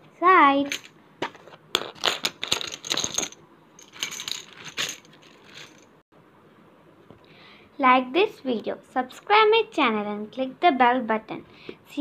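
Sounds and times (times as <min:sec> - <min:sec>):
plastic tiles clattering: 0:01.8 - 0:05.9.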